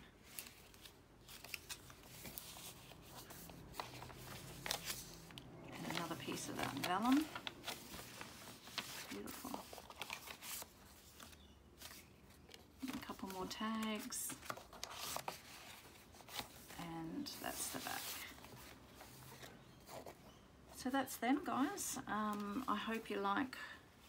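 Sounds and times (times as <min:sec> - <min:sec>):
paper rustling: 0:00.0 - 0:20.2
soft paper crinkles and taps: 0:00.2 - 0:16.6.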